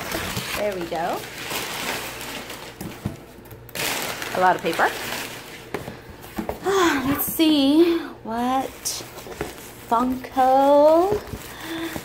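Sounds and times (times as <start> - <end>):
packing paper rustling: 0.0 - 6.8, 8.6 - 12.0.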